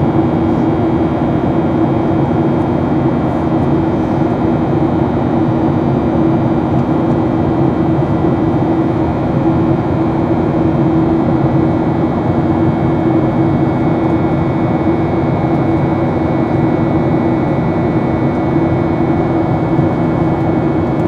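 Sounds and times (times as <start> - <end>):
jet engine drone in cabin: 0.0 - 21.0.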